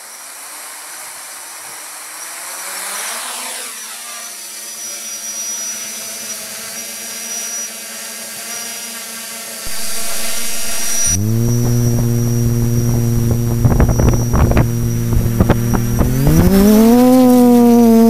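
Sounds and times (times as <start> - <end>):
quadcopter motors whining: 0.0 - 18.0
low rumble: 9.7 - 16.9.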